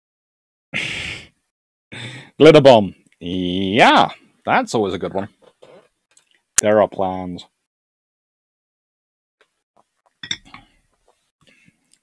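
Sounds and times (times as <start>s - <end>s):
glass clinking on desk: 10.2s - 10.7s.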